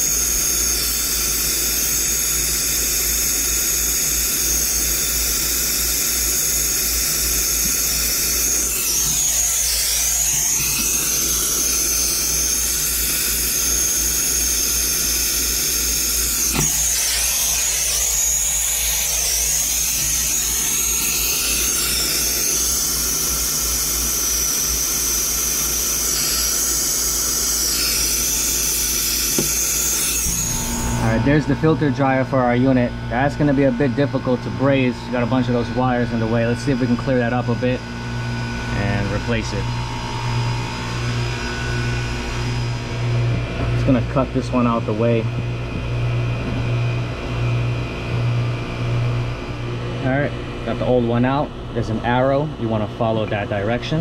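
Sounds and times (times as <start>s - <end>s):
torch flame hissing: 0.0s - 31.4s.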